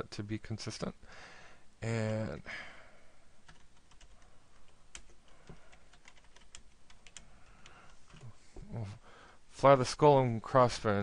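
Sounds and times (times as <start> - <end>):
computer keyboard typing: 3.4 - 8.3.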